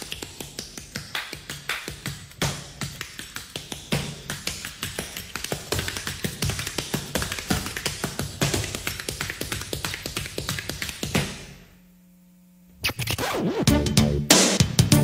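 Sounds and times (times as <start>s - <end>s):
instrumental dance-pop beat: 0.0s - 11.4s, 13.4s - 15.0s.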